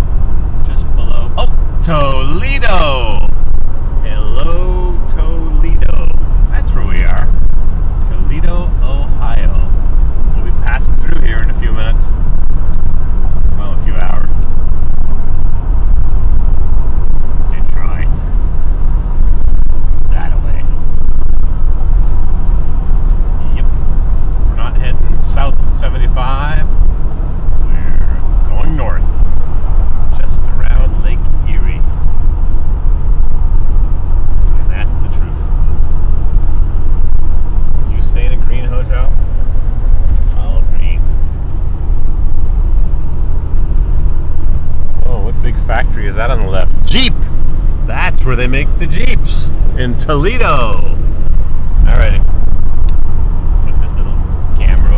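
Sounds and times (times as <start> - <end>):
road and wind noise inside car: 0.0 - 54.9.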